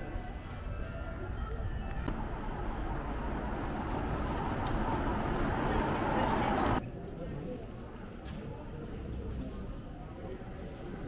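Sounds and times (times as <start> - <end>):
low street rumble: 0.0 - 10.6
faint indistinct voices: 0.0 - 11.0.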